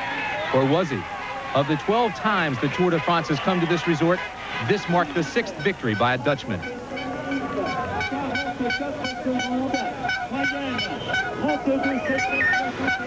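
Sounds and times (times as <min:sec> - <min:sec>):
crowd shouting: 0:00.0 - 0:13.0
horns tooting: 0:00.0 - 0:13.0
high pitched pulsing tone: 0:06.5 - 0:13.0.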